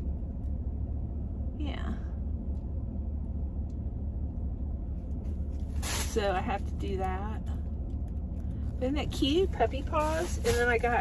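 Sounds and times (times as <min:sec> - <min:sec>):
car engine idling rumble: 0:00.0 - 0:11.0.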